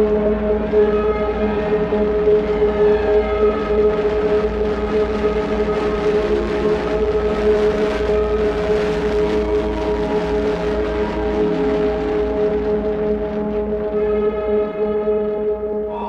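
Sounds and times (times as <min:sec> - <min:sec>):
ambient electronic drone: 0:00.0 - 0:16.0.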